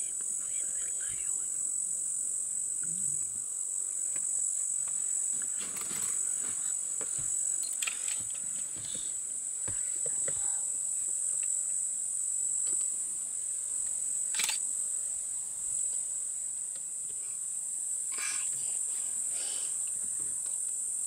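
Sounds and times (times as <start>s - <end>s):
insects droning: 0.0s - 21.0s.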